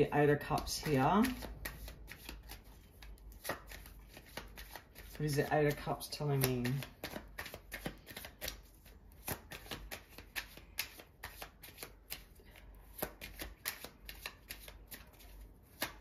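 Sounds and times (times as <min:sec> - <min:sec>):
cards being shuffled: 0:00.2 - 0:16.0.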